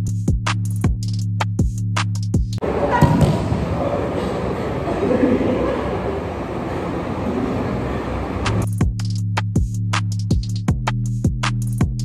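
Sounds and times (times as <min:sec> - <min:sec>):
electronic music with drum beat: 0:00.0 - 0:02.6, 0:08.6 - 0:12.0
voices: 0:02.6 - 0:08.6
steady room noise: 0:02.6 - 0:08.9.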